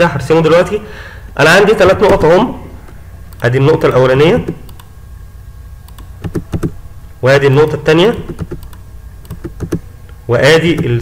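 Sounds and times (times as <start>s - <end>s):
mouse and keyboard clicks: 5.9s - 6.8s, 8.2s - 9.8s.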